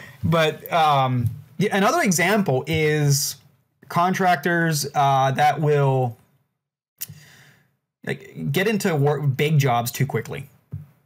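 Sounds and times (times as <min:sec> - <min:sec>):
man breathing in through mouth: 0:07.0 - 0:07.8.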